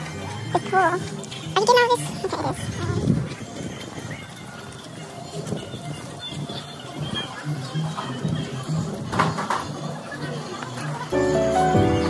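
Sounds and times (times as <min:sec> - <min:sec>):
people's voices: 0:00.0 - 0:12.0
background music: 0:11.1 - 0:12.0.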